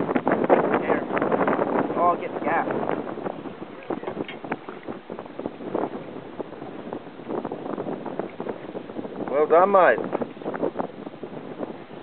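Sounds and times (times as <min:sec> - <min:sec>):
water slapping boat hull: 0:00.0 - 0:12.0
wind buffeting microphone: 0:00.0 - 0:12.0.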